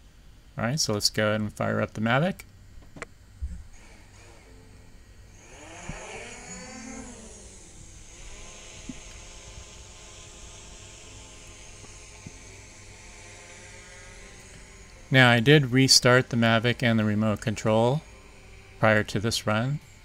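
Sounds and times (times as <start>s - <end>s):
drone motors whining: 3.4s - 20.0s.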